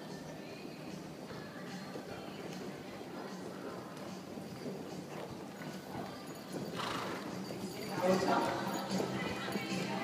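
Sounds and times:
horse hoofbeats: 0.0 - 10.0.

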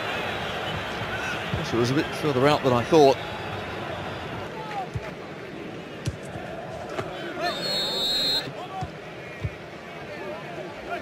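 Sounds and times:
stadium crowd noise: 0.0 - 11.0
shrill whistle: 7.4 - 8.5.

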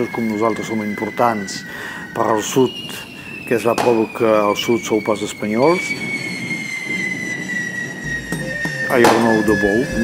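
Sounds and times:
firework fountains hissing: 0.0 - 10.0
high falling whistle: 0.0 - 10.0.

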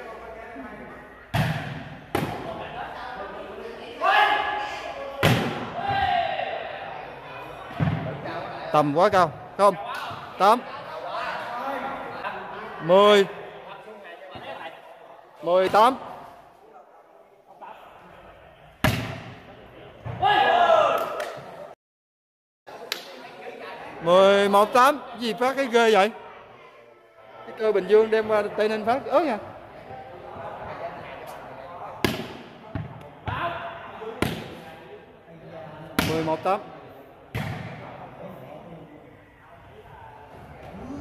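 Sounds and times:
volleyball smack: 18.8 - 19.4.

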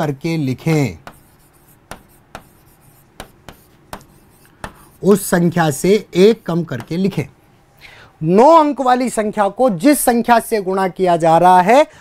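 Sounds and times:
marker pen scratching on board: 0.6 - 7.2
marker pen taps: 0.7 - 4.9, 6.7 - 7.1.

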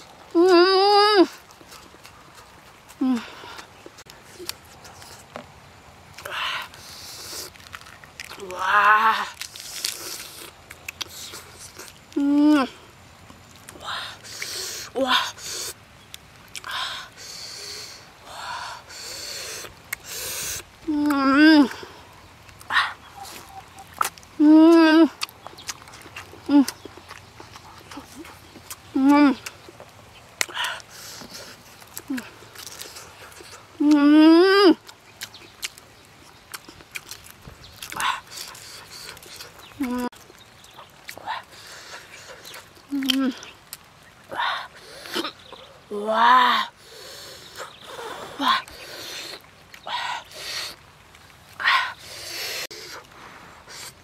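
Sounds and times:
chewing: 1.2 - 18.1, 18.8 - 34.0, 34.7 - 45.9, 46.8 - 54.0.

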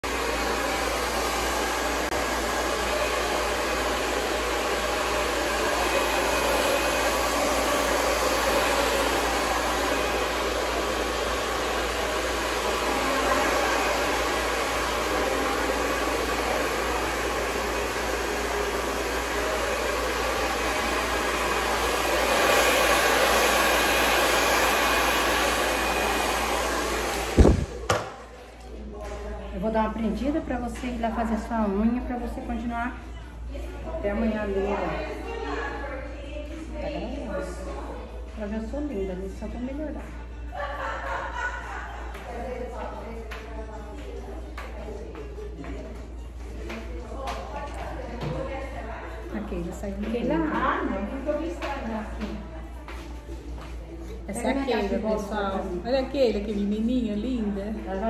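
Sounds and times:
hair dryer blowing: 0.0 - 28.3.

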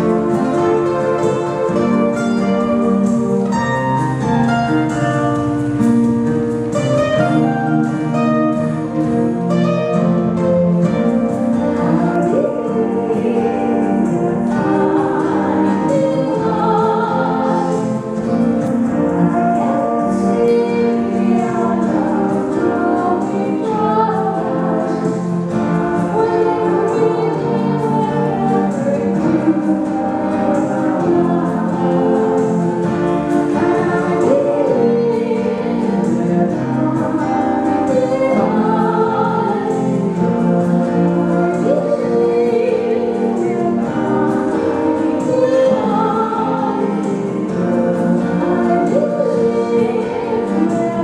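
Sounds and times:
acoustic guitar: 0.0 - 51.0
woman singing with vibrato: 11.6 - 51.0
woman singing slow song: 19.2 - 25.2.

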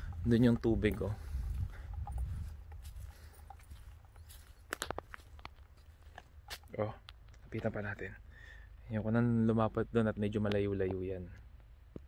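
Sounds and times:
wind on microphone: 0.0 - 3.8
dry leaves crunching underfoot: 2.8 - 6.8.

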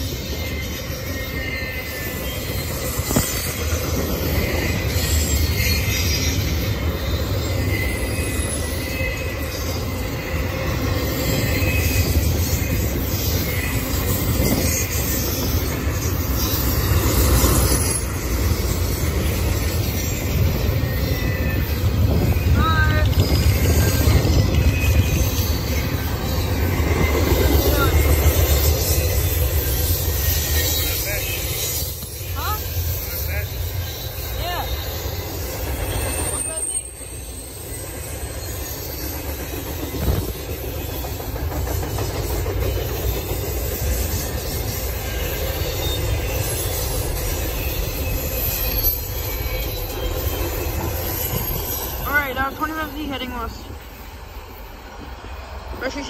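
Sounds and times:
wheel squeals: 0.0 - 53.5
train wheels rumbling on track: 0.0 - 56.0.

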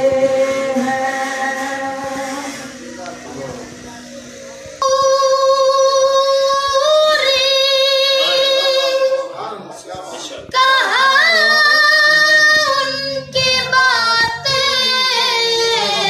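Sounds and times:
person singing long notes: 0.0 - 3.6, 4.8 - 9.3, 10.6 - 16.0.

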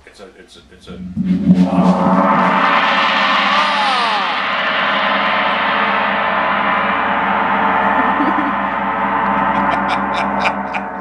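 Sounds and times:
gong ringing: 1.4 - 11.0.

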